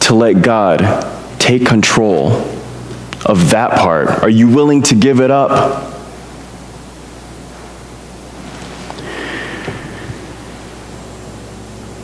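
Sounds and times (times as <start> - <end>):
low electrical hum: 0.0 - 12.0
microphone hiss: 0.0 - 12.0.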